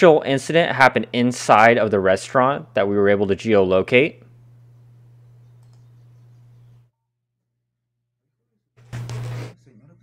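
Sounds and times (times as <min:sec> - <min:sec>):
steady low hum: 0:00.0 - 0:06.9
computer mouse clicks: 0:05.5 - 0:05.9.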